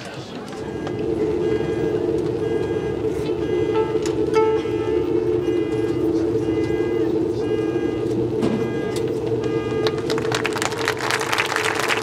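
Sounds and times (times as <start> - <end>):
marching band holding a chord: 0.5 - 12.0
metronome-like beep: 0.6 - 11.0
crowd clapping: 9.4 - 12.0.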